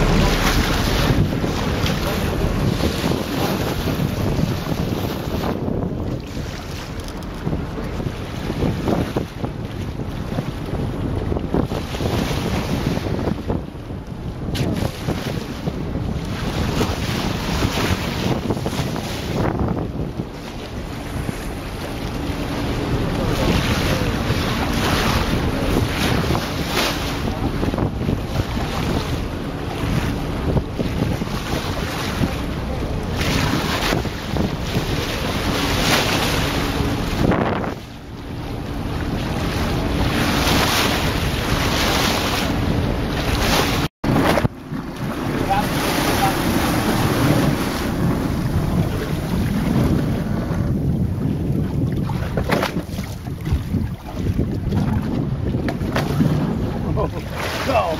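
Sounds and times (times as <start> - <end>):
water rushing past boat: 0.0 - 57.9
wind buffeting microphone: 0.0 - 57.9.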